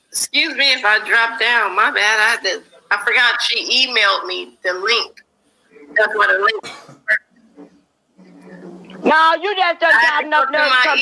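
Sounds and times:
person's voice: 0:08.3 - 0:11.0.

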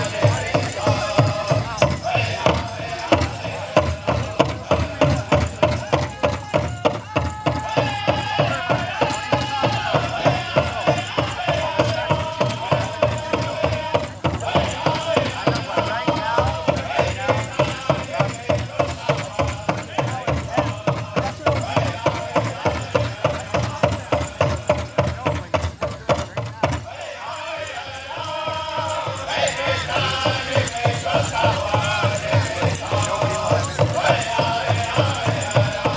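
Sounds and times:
group singing: 0:00.0 - 0:05.9, 0:07.4 - 0:24.9, 0:26.8 - 0:35.9
large drum fast beat: 0:00.0 - 0:35.9.

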